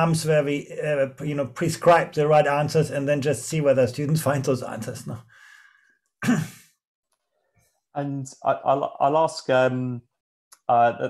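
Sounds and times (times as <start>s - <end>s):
faint breath: 5.2s - 6.0s.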